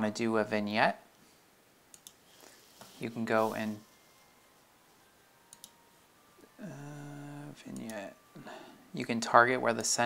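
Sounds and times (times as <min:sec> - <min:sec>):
computer mouse clicks: 0:01.9 - 0:02.2, 0:05.5 - 0:05.8, 0:07.7 - 0:08.0.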